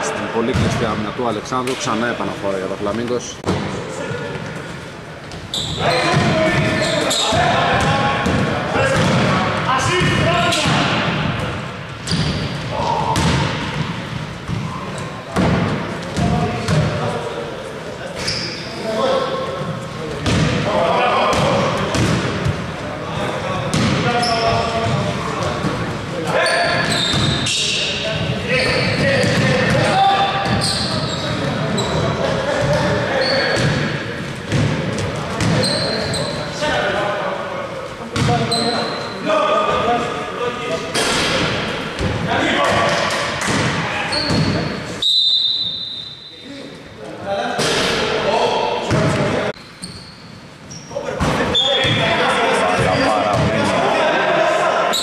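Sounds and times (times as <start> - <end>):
sneaker squeaks: 4.4 - 9.2, 12.0 - 15.2, 18.1 - 18.8, 23.7 - 25.7, 26.3 - 36.6, 38.2 - 39.3, 44.0 - 46.5, 49.6 - 53.7.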